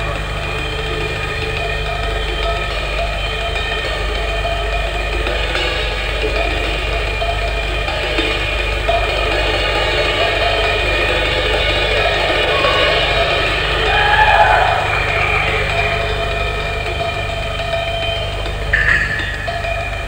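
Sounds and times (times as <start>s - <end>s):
drum rolls: 0.0s - 20.0s
washing cymbals: 0.0s - 20.0s.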